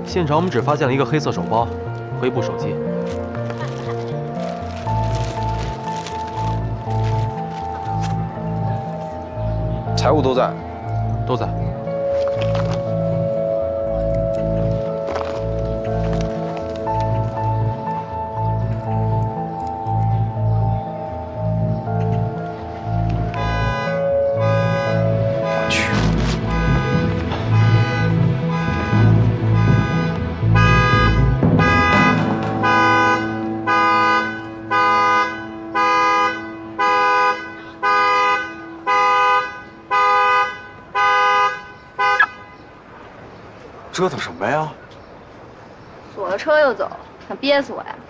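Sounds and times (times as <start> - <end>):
background music: 0.0 - 42.4
car horn honking: 23.2 - 42.8.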